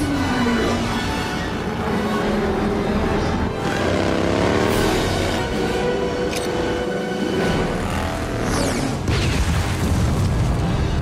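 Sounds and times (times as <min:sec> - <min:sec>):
motorcycle engine: 0:00.0 - 0:09.1
action film music: 0:00.0 - 0:11.0
explosions booming: 0:09.0 - 0:11.0.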